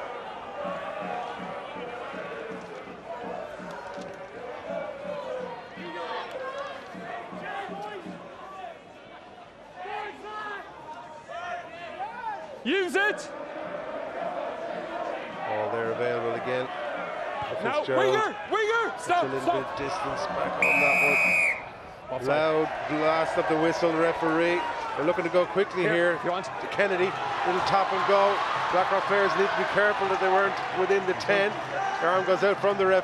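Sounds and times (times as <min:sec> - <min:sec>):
faint crowd noise: 0:00.0 - 0:33.0
players shouting calls: 0:11.5 - 0:26.2.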